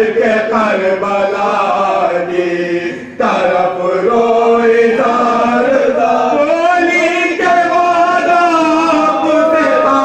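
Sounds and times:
men chanting an elegy: 0:00.0 - 0:10.0.

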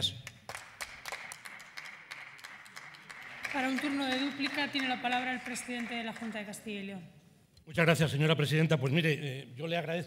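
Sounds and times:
light applause: 0:00.3 - 0:06.7.

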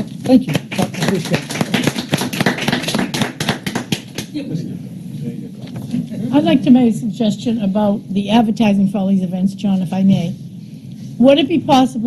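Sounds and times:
small group applauding: 0:00.0 - 0:04.4.

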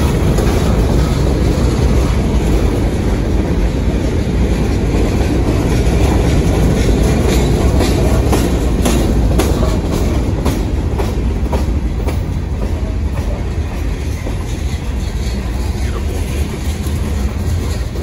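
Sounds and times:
freight train rumbling: 0:00.0 - 0:18.0
train wheel clicks and clanks: 0:00.0 - 0:18.0.

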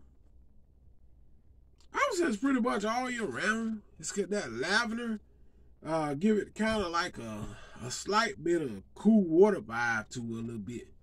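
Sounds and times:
low steady hum: 0:00.0 - 0:11.0
man speaking: 0:01.9 - 0:05.2, 0:05.8 - 0:11.0.

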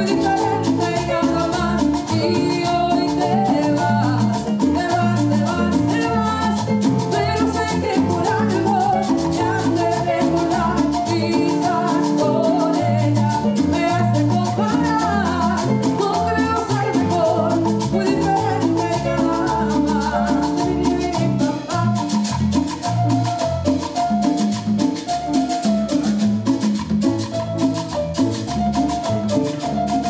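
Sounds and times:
congas: 0:00.0 - 0:30.0
electric bass: 0:00.0 - 0:30.0
mallet-like lead melody: 0:00.0 - 0:30.0.

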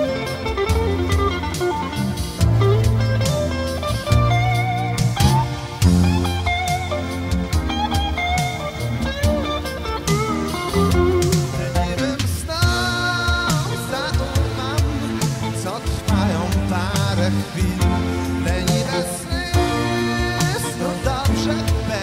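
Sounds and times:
bass line: 0:00.0 - 0:22.0
drums: 0:00.0 - 0:22.0
lead guitar melody with bends: 0:00.0 - 0:22.0.

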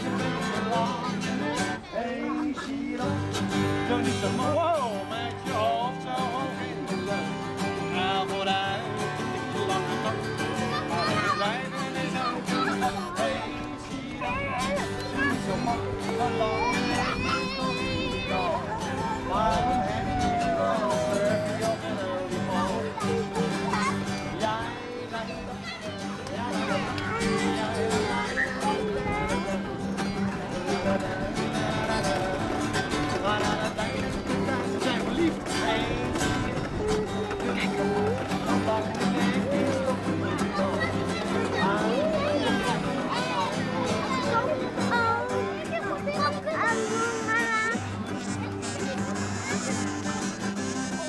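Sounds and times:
acoustic guitar: 0:00.0 - 0:51.0
people's voices: 0:00.0 - 0:51.0.

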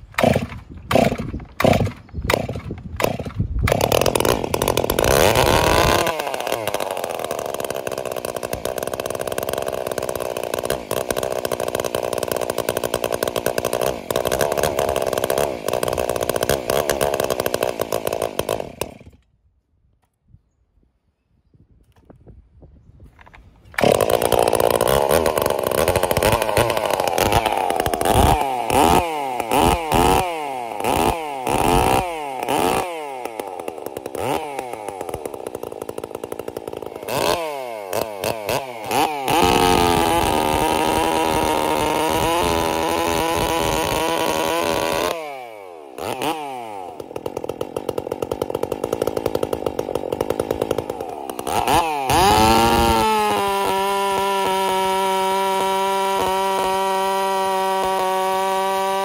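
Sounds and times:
chainsaw revving: 0:00.0 - 0:19.2, 0:23.8 - 0:59.0
chainsaw cutting log: 0:00.0 - 0:19.4, 0:23.7 - 0:59.0.

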